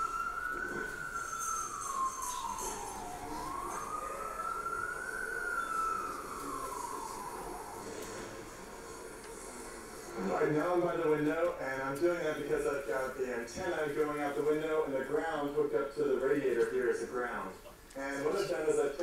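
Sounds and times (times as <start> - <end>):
wailing siren: 0.0 - 11.2.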